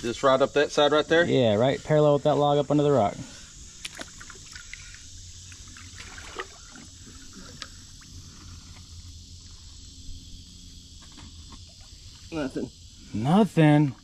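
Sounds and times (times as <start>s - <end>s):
steady background hiss: 0.0s - 14.0s
water sloshing and splashing: 3.8s - 9.0s.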